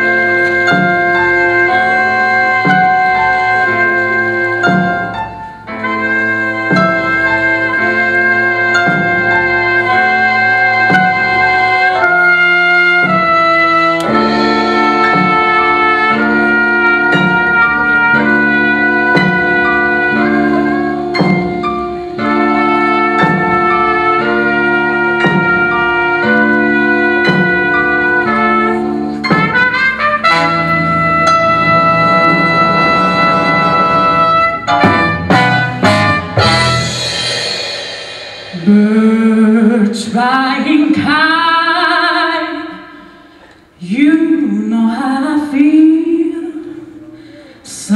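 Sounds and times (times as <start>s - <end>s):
horn section chords: 0.0s - 39.3s
drum strokes: 0.0s - 40.1s
blues band playing: 0.0s - 41.6s
woman singing: 38.6s - 42.9s, 43.8s - 47.9s.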